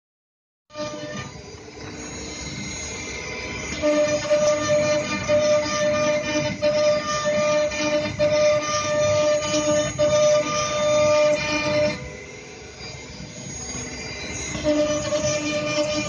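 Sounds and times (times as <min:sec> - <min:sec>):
grinding cutting noise: 0:00.7 - 0:16.0
router spindle whining: 0:00.7 - 0:16.0.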